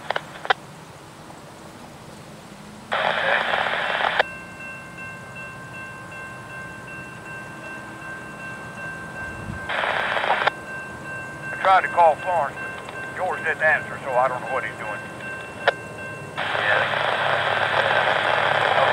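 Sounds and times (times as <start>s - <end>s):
loud radio hiss: 0.0s - 0.6s, 2.6s - 4.3s, 9.7s - 10.6s, 11.5s - 15.8s, 16.4s - 18.9s
radio clicks: 0.0s - 0.6s, 2.9s - 4.3s, 9.7s - 10.6s, 16.4s - 18.9s
crossing warning bell ringing: 2.5s - 18.9s.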